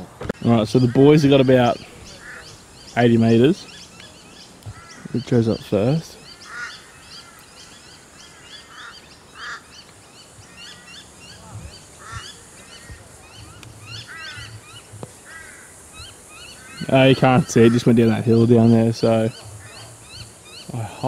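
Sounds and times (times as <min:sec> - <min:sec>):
birds chirping: 0:00.0 - 0:21.0
harsh bird calls: 0:00.0 - 0:21.0.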